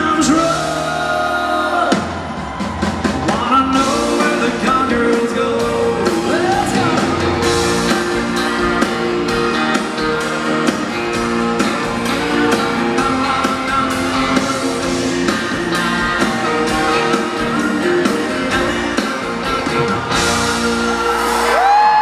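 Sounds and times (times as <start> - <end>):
man singing: 0.0 - 2.1, 3.2 - 19.6
drum kit: 0.0 - 22.0.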